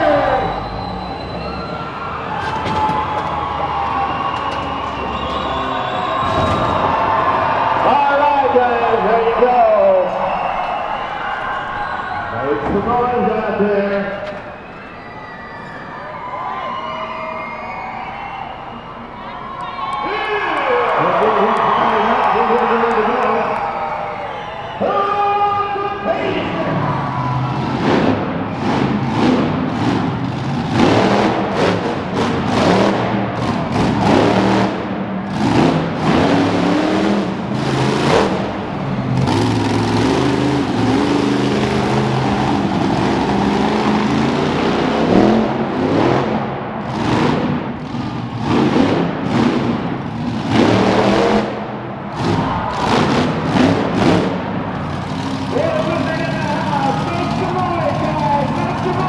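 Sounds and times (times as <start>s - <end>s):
monster truck engine revving: 0.0s - 19.2s, 19.8s - 59.0s
voice: 7.8s - 10.2s, 12.4s - 14.2s, 20.0s - 23.6s, 24.8s - 26.9s, 55.5s - 59.0s.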